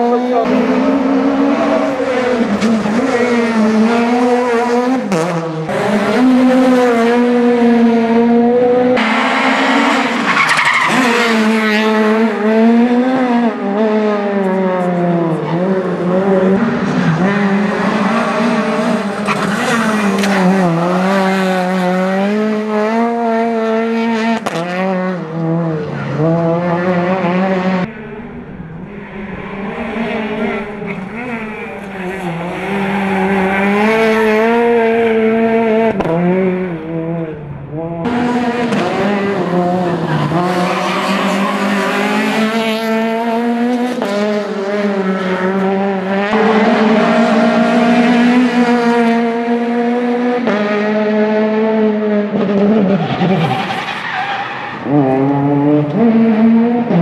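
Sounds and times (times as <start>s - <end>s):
rally car engine at high revs: 0.0s - 57.0s.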